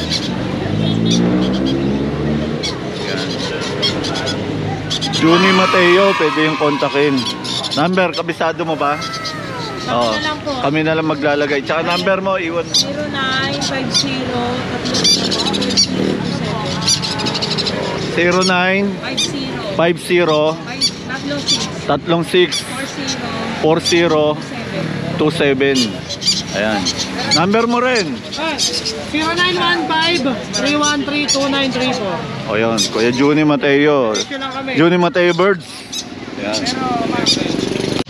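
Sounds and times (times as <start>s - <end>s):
small birds chirping: 0.0s - 2.0s, 2.6s - 38.0s
vehicle engine revving: 0.0s - 19.6s
background voices: 5.0s - 10.7s.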